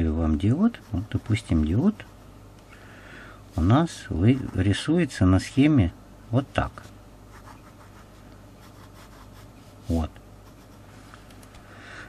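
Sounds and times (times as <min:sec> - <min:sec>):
ballpoint pen scratching on paper: 0:04.2 - 0:04.7.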